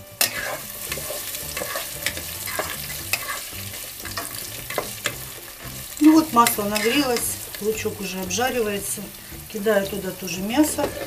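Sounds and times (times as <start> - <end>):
onion sizzling in hot oil: 0.0 - 11.0
spatula scraping a bowl: 0.2 - 5.2.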